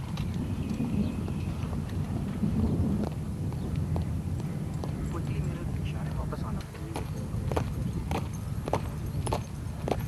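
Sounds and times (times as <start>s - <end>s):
boots marching on pavement: 0.0s - 5.4s, 6.4s - 10.0s.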